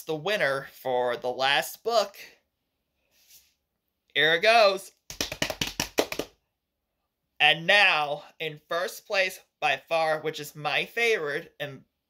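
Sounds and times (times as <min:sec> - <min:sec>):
hands drumming rapidly: 0:05.1 - 0:06.4.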